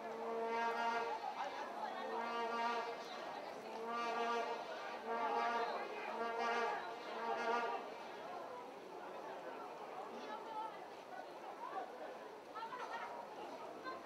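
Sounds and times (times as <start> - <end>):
vuvuzela blasts: 0.1 - 1.2, 2.2 - 3.0, 3.8 - 7.9.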